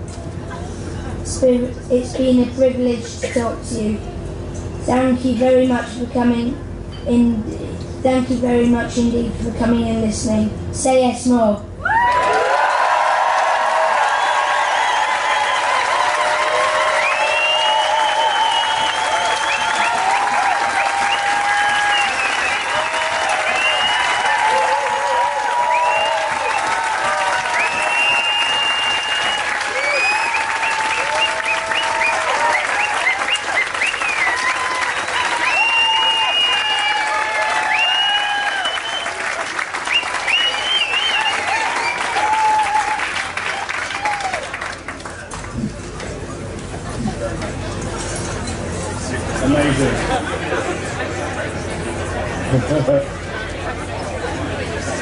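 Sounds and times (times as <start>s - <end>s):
crowd cheering and calling out: 11.8s - 39.6s, 40.2s - 44.8s
audience clapping: 11.9s - 46.2s.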